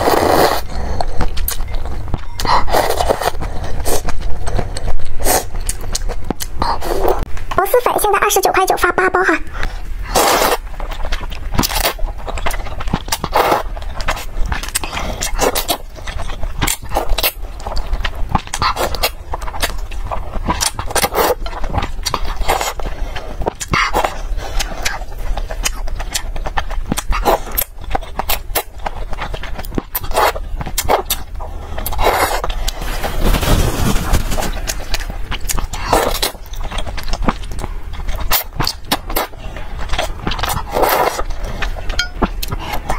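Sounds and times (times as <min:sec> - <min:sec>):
person slurping noodles: 0:00.0 - 0:01.4, 0:02.4 - 0:04.1, 0:10.0 - 0:10.6.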